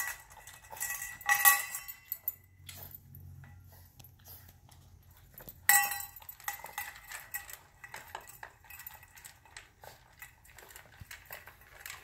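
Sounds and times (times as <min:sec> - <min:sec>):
metal food bowl clanking: 0:00.0 - 0:02.8, 0:05.3 - 0:12.0
dog eating from bowl: 0:00.0 - 0:12.0.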